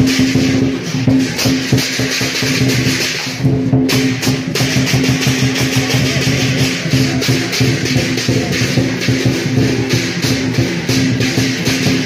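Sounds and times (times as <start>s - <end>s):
big drum beaten in dense strokes: 0.0s - 12.0s
crashing cymbals: 0.0s - 12.0s.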